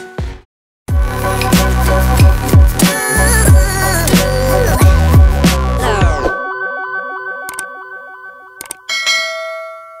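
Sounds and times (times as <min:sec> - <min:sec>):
synth melody outro music: 0:01.0 - 0:08.9
notification bell ding: 0:06.4 - 0:10.0.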